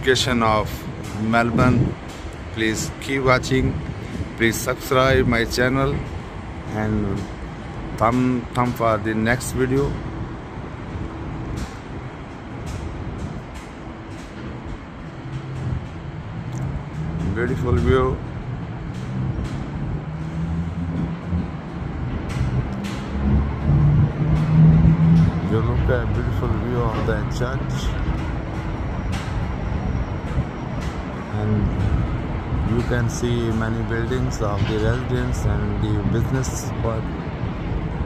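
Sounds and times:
distant city traffic rumble: 0.0s - 38.0s.

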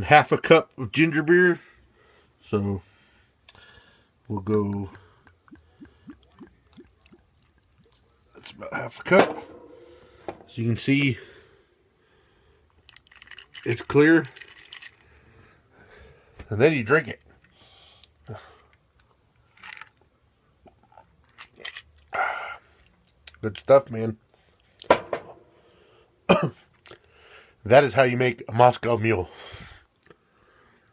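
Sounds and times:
man sipping drink: 4.6s - 8.2s, 12.7s - 13.7s.

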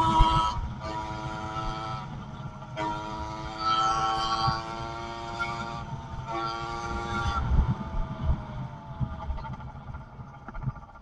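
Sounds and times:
two-stroke engine buzzing: 0.0s - 11.0s
uneven low rumble: 0.0s - 11.0s.

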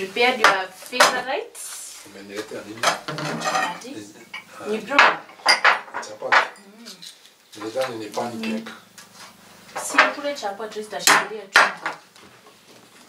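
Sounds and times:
plates and cutlery clinking: 2.8s - 6.6s.

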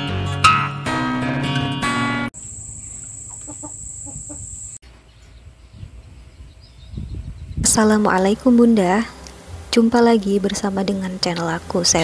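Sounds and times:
outdoor background noise: 2.4s - 12.0s
chicken clucking: 3.2s - 4.5s.

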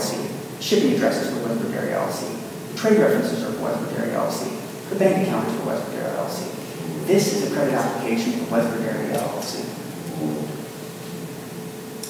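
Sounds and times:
faint steady hum: 0.0s - 12.0s
faint murmur of voice: 9.9s - 11.4s.

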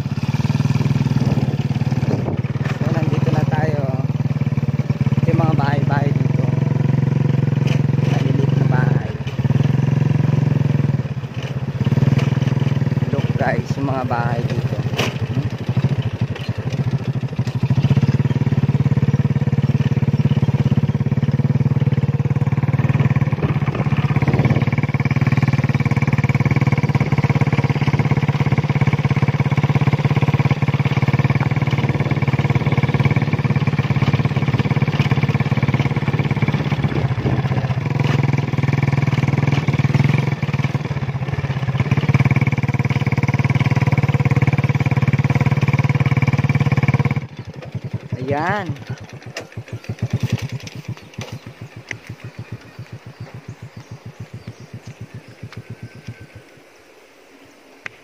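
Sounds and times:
small motorcycle engine running: 0.0s - 56.8s.

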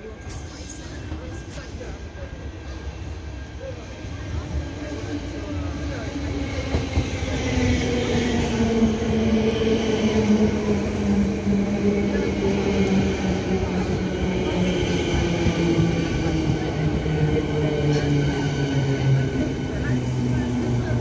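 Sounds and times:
electric train arriving: 0.0s - 21.0s.

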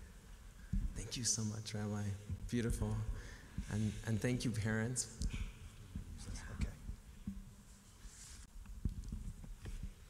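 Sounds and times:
soft low thumps: 0.0s - 1.2s, 2.2s - 7.7s
faint whispering: 2.8s - 7.2s.

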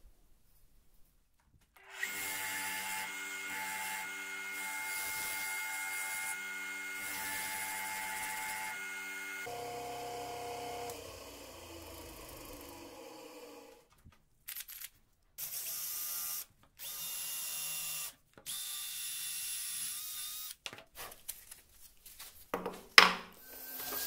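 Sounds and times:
bench grinder motor hum: 1.8s - 13.9s, 23.4s - 24.0s.

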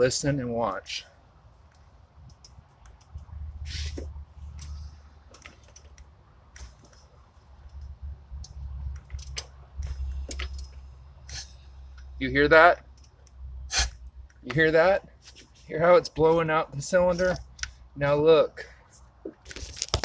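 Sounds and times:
air puffing from spark plug hole: 3.6s - 4.9s, 11.2s - 11.7s, 13.7s - 14.0s.

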